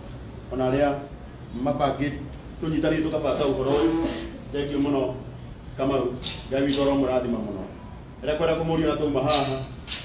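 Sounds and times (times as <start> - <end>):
man speaking: 0.5 - 9.8.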